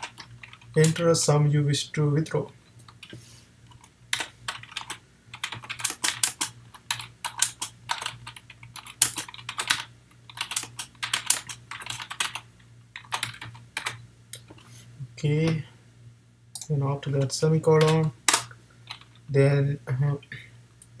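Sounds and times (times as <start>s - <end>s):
typing on computer keyboard: 3.7s - 12.4s, 13.0s - 14.0s, 17.8s - 19.1s.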